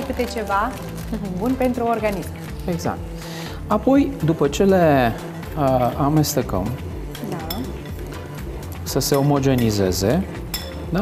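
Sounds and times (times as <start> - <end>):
spoon clinking against glass: 7.1 - 8.0, 8.6 - 11.0.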